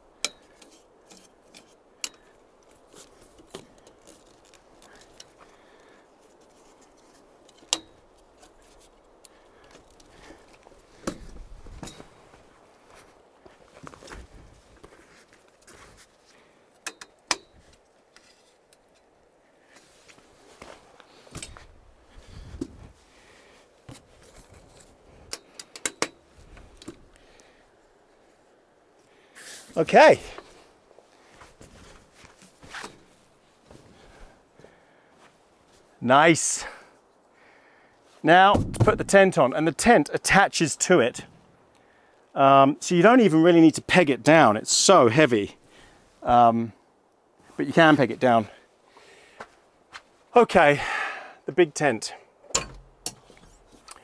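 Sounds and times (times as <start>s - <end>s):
metal frame clicks and knocks: 25.3s - 26.2s, 38.5s - 39.3s, 52.5s - 54.0s
frame thumping down: 38.4s - 39.4s, 52.5s - 53.3s.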